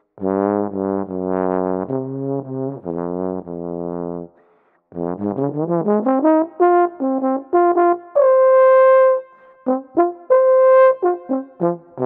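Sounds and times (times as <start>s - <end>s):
solo trombone playing: 0.2s - 4.3s, 5.0s - 12.0s.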